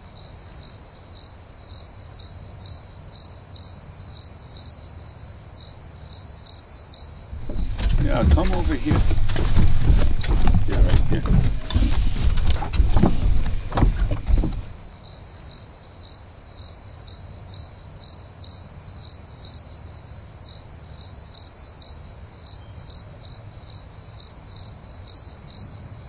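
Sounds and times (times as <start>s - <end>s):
crickets chirping: 7.4s - 15.2s.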